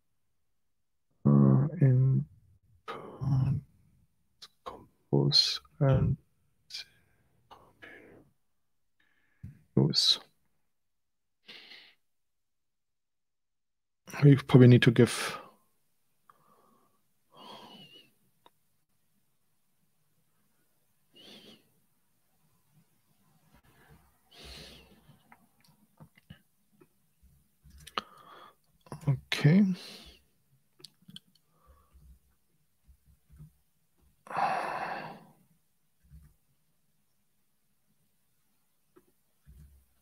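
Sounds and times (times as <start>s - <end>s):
man exhaling: 34.2s - 35.3s.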